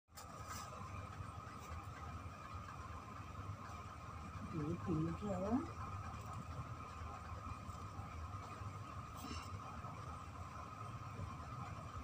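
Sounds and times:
faint background hum: 0.1s - 12.0s.

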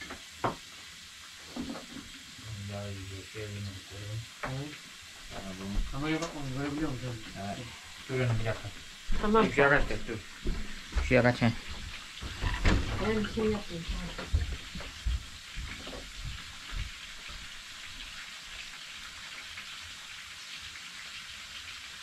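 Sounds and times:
food sizzling in hot oil: 0.0s - 22.0s
person speaking: 5.4s - 10.2s.

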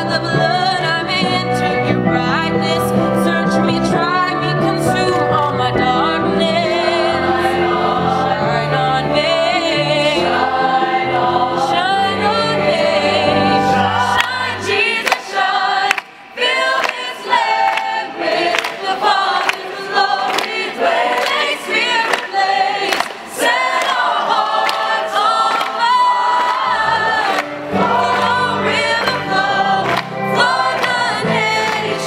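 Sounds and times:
choir singing: 0.0s - 32.0s.

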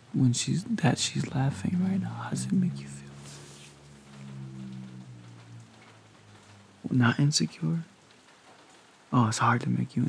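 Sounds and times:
rain patter: 0.0s - 10.0s
low sustained hum: 0.8s - 7.4s.

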